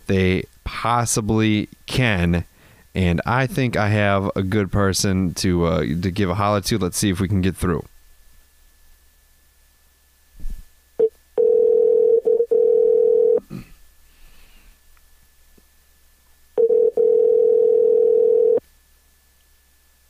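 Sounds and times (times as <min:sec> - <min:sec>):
telephone ringback tone: 0:11.4 - 0:13.4, 0:16.6 - 0:18.6.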